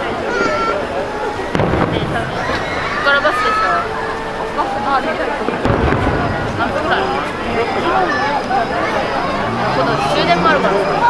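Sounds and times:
crowd chatter: 0.0 - 11.0
firework bang: 1.4 - 4.2, 5.3 - 8.6.

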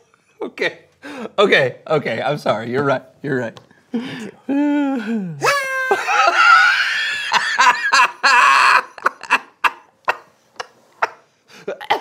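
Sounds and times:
man laughing hard: 5.0 - 12.0.

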